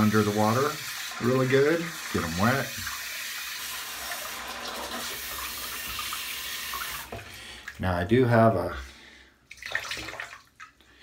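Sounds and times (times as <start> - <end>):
water splashing in sink: 0.0 - 7.8, 9.5 - 10.8.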